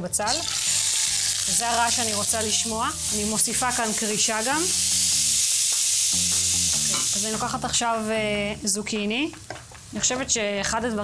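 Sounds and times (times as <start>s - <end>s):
onion sizzling in hot oil: 0.1s - 11.0s.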